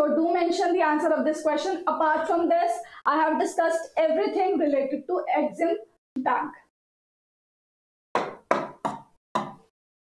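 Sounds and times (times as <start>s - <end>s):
tapping on touchscreen: 8.2s - 9.7s.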